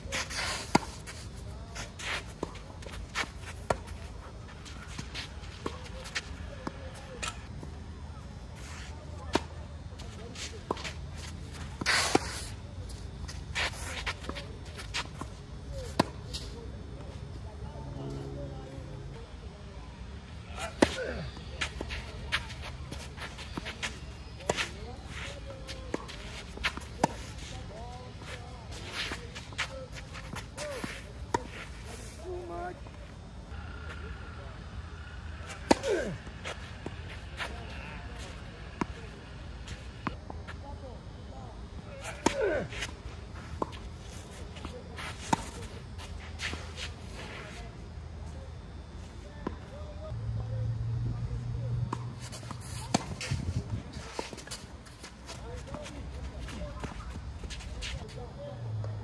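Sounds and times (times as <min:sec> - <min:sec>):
shoes scuffing on clay: 0:00.0 - 0:06.8, 0:20.6 - 0:32.2, 0:35.5 - 0:40.6, 0:41.9 - 0:47.7, 0:51.9 - 0:58.3
racket hitting tennis ball: 0:35.4 - 0:39.0, 0:51.9 - 0:53.4.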